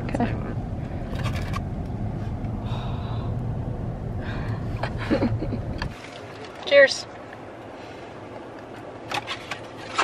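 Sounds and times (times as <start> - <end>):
low hum inside car: 0.0 - 9.1.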